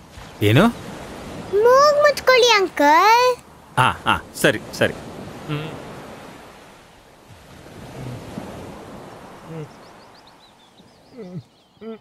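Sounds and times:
waves washing onto beach: 0:00.0 - 0:11.2.

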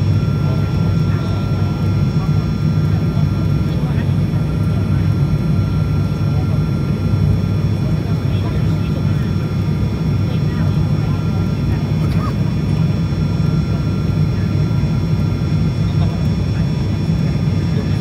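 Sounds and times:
propeller engines droning: 0:00.0 - 0:18.0
thin steady whine: 0:00.0 - 0:18.0.

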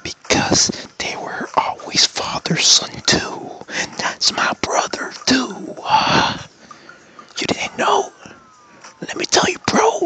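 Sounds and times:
man whispering and speaking: 0:00.0 - 0:06.5, 0:07.4 - 0:08.3, 0:09.0 - 0:10.0.

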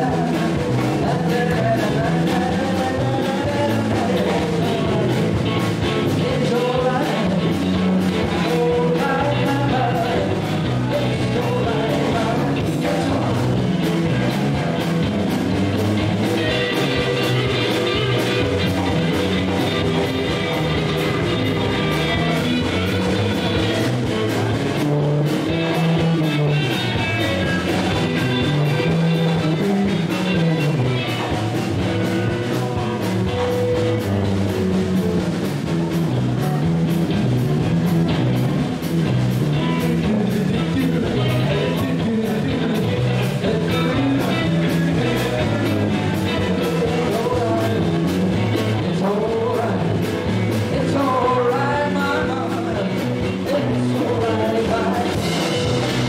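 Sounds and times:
drum kit: 0:00.0 - 0:56.0
electric bass: 0:00.0 - 0:56.0
electric guitar: 0:00.0 - 0:56.0.

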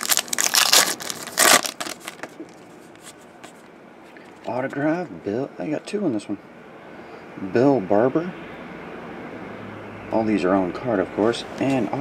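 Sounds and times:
card pack wrapper crinkling: 0:00.0 - 0:03.7
cards rustling: 0:00.0 - 0:04.6.

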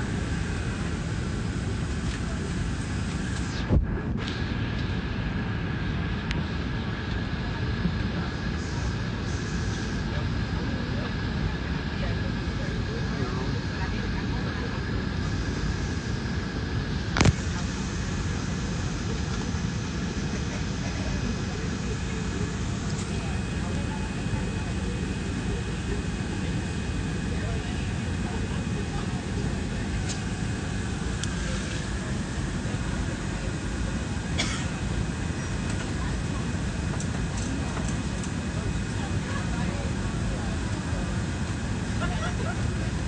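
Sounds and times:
low rumbling noise: 0:00.0 - 0:43.0
muffled voices: 0:00.0 - 0:43.0.

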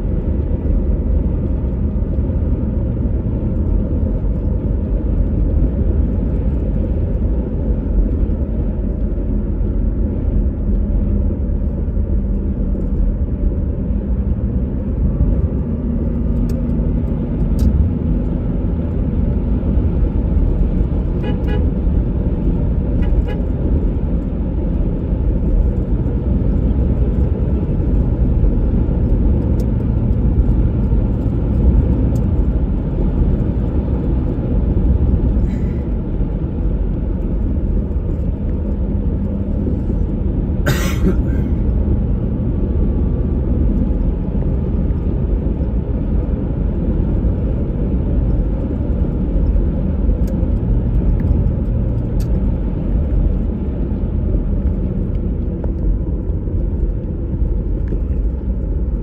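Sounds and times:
car engine and road rumble: 0:00.0 - 0:59.0.

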